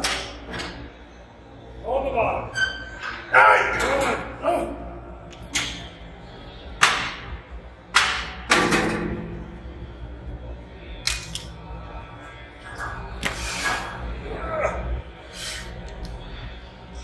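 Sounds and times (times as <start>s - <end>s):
quiet background music: 0.0s - 17.0s.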